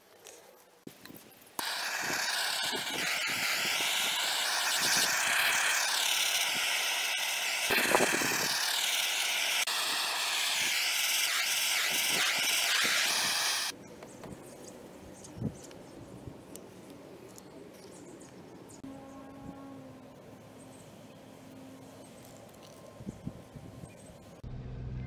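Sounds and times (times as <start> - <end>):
blowtorch flame hissing: 1.6 - 13.7.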